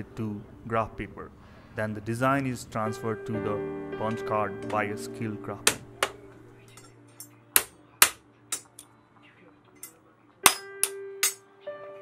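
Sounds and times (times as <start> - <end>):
hammer clanking on metal punch: 5.6 - 6.2.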